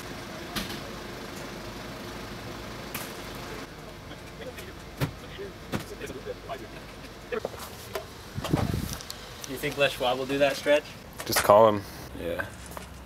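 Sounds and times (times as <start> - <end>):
van engine running: 0.0 - 11.2.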